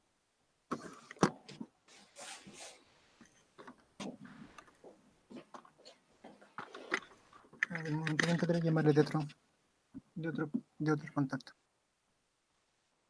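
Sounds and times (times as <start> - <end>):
handling noise rustling: 0.7 - 9.4.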